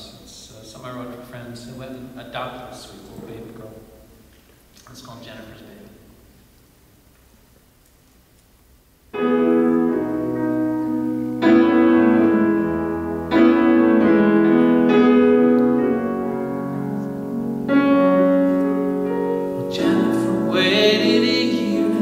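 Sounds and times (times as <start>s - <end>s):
grand piano chords: 9.1s - 22.0s.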